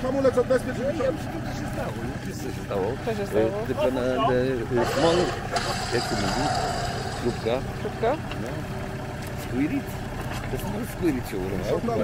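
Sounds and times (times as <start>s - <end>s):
vehicle engine idling: 0.0s - 12.0s
voices: 0.0s - 12.0s.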